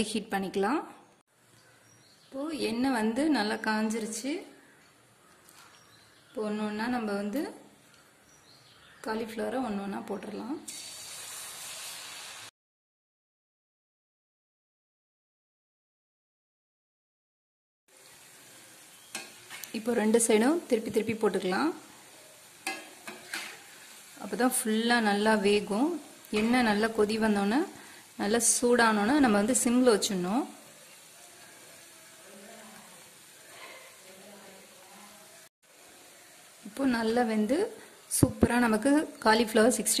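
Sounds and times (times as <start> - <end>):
food deep-frying in oil: 5.5 - 12.5, 17.9 - 40.0.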